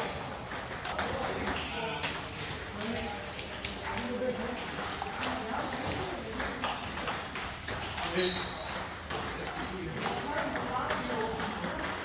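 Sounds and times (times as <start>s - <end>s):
table tennis ball clicking: 3.9s - 12.0s.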